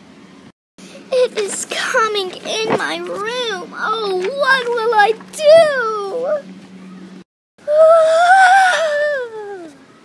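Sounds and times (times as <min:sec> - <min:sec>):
child screaming: 0:07.6 - 0:09.8.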